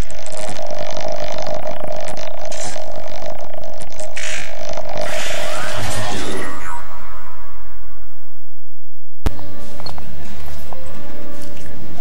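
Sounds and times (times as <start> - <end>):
steady droning tone: 0.0 - 11.4.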